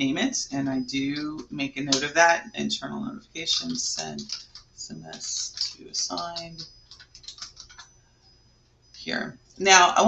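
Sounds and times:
computer keyboard typing: 3.4s - 7.9s.

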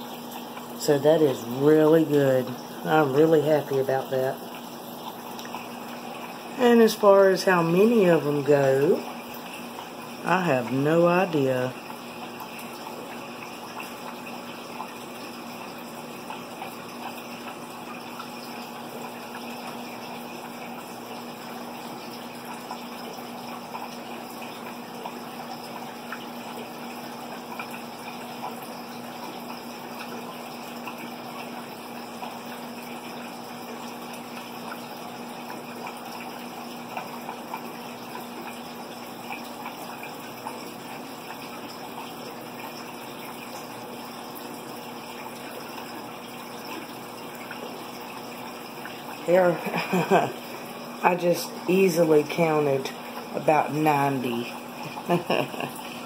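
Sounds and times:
water trickling: 0.0s - 56.0s.

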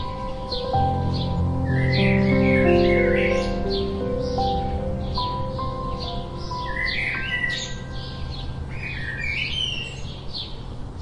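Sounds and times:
soft background music: 0.0s - 10.5s
sparrows chirping: 0.0s - 11.0s.

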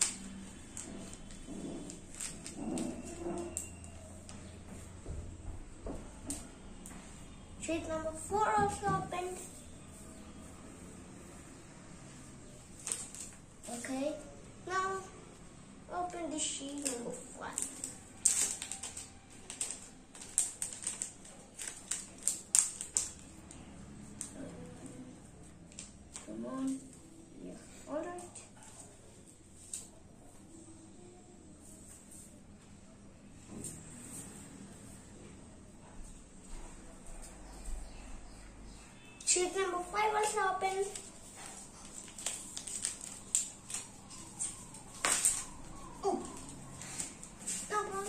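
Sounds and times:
plastic packaging crinkling: 16.6s - 23.3s, 40.2s - 48.0s.

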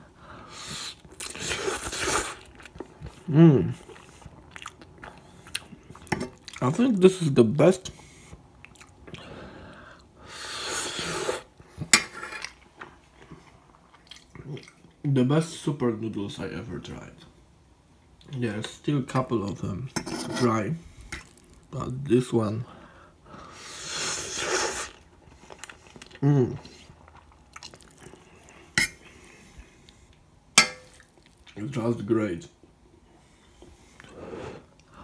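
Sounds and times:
person slurping noodles: 0.5s - 2.5s, 10.3s - 11.5s, 23.5s - 25.1s
mouth and utensil eating noises: 0.6s - 6.8s, 24.2s - 30.2s.

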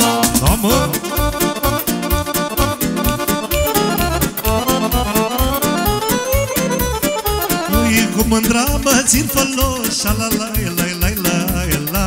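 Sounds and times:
live band playing party music: 0.0s - 12.0s.

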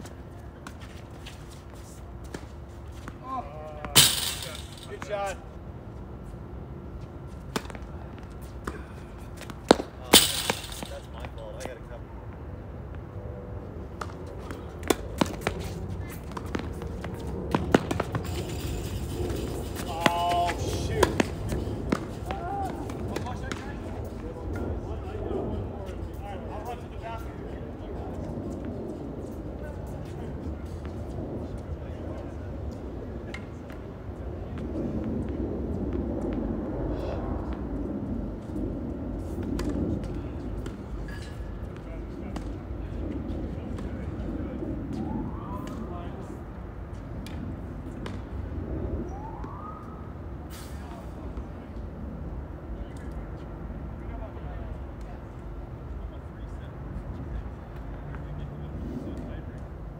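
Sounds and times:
low outdoor background hum: 0.0s - 59.9s
tennis balls struck by rackets: 0.6s - 5.4s, 7.2s - 11.8s, 13.9s - 24.2s, 39.4s - 42.6s, 47.2s - 48.4s.

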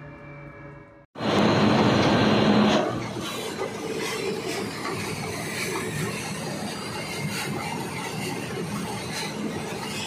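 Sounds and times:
loud humming machine noise: 1.2s - 3.7s.

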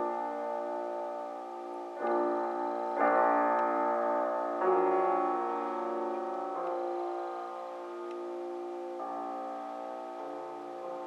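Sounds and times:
grand piano chord: 0.0s - 11.0s.

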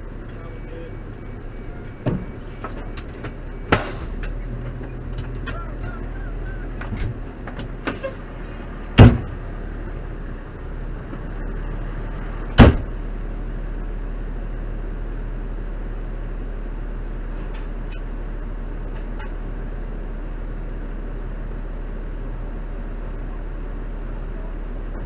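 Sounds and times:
fire engine idling: 0.0s - 25.0s
loud sharp bang: 9.0s - 9.3s, 12.6s - 12.9s.

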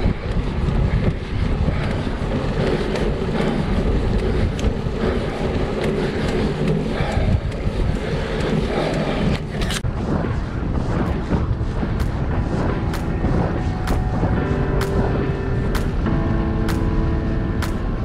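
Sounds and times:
wind rushing over microphone: 0.0s - 18.0s.

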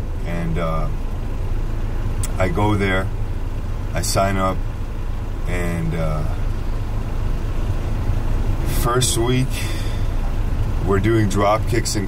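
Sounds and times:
car idling inside cabin: 0.0s - 12.0s.

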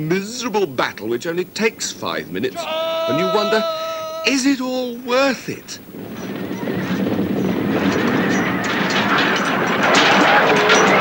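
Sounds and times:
horses galloping and neighing: 2.6s - 4.4s.

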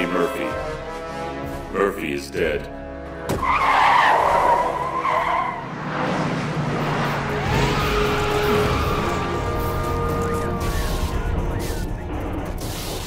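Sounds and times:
car driving: 2.8s - 13.0s.

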